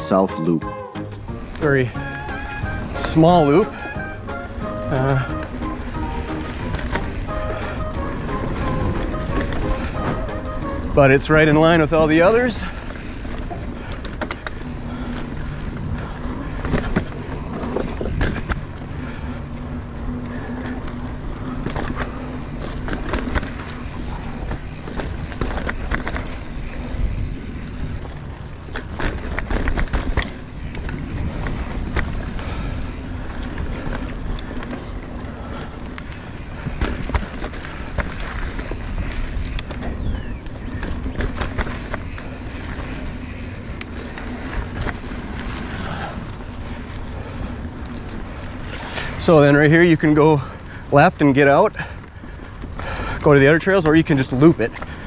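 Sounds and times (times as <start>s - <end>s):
bike tyres on dirt: 0.0s - 55.0s
bike clicks and rattles: 1.4s - 55.0s.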